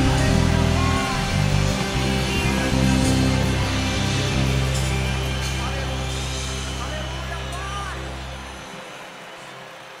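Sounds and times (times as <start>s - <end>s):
band holding low chord: 0.0s - 9.7s.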